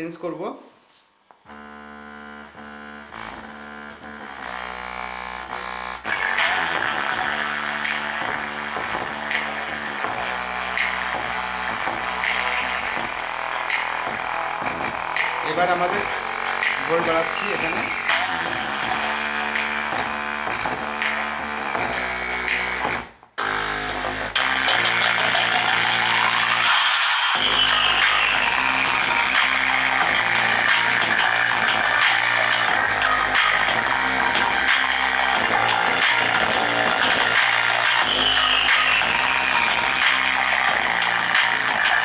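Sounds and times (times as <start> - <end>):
music with guitar and electronic beat: 6.0 - 42.0.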